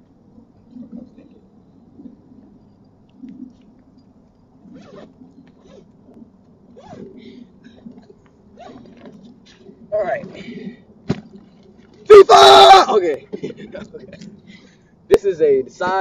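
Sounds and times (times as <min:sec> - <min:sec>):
zipper tugged: 0:04.7 - 0:05.8, 0:06.8 - 0:07.2, 0:08.6 - 0:09.2.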